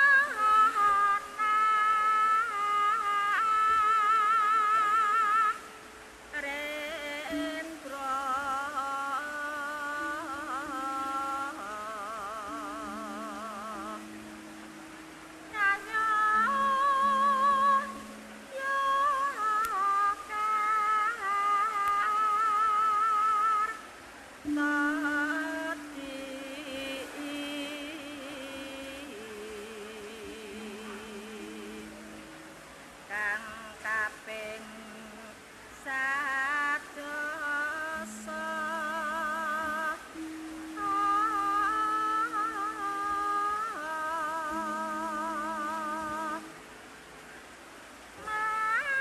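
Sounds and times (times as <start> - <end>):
gamelan music: 0.0 - 3.8, 6.4 - 34.6, 37.6 - 49.0
person singing wavering note: 0.0 - 46.9, 48.1 - 49.0
low sustained tone: 0.0 - 49.0
struck ringing tone: 12.5 - 19.8.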